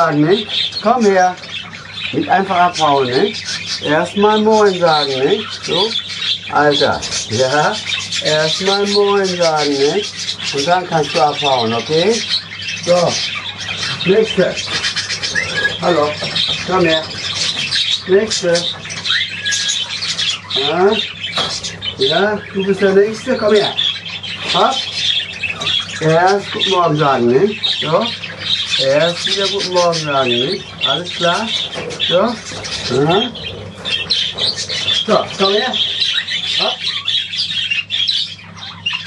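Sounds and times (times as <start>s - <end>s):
budgerigars chattering and screeching: 0.0s - 39.0s.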